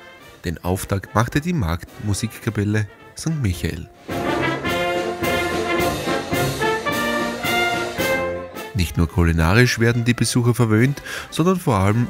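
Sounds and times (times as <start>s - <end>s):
brass band playing: 1.0s - 9.2s.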